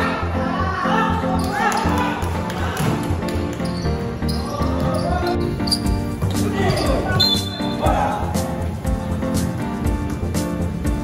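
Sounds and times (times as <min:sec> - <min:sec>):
music with steady beat: 0:05.4 - 0:11.0.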